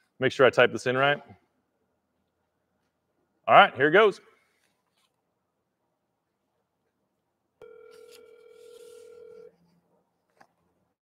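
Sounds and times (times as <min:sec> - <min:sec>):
phone ringback tone: 0:07.6 - 0:09.5.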